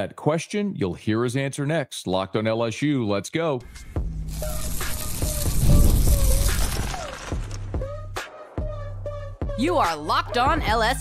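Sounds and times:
low bass: 0:04.0 - 0:08.2
rush of hiss-like noise: 0:04.4 - 0:06.8.

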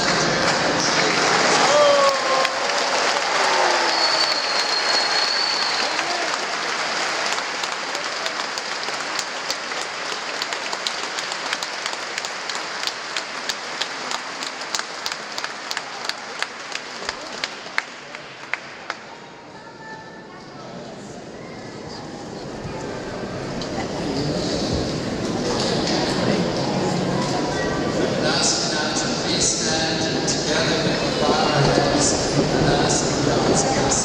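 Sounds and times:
people cheering: 0:00.0 - 0:19.1
crowd applauding: 0:00.0 - 0:19.3
high whistle: 0:03.7 - 0:06.1.

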